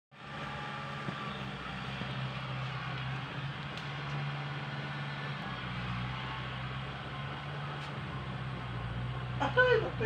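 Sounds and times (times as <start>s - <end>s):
tractor engine running: 0.2s - 10.0s.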